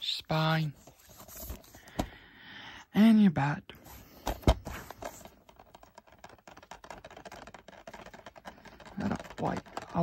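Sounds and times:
plastic case clicking and rustling: 0:04.2 - 0:10.0.

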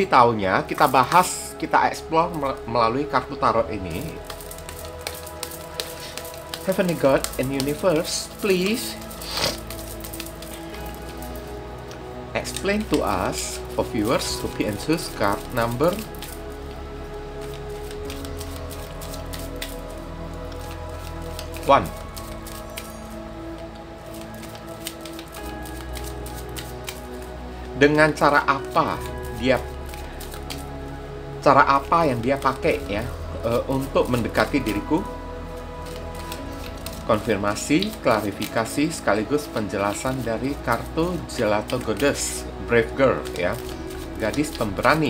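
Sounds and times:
faint background music: 0:00.0 - 0:45.0
cards being shuffled: 0:00.6 - 0:45.0.

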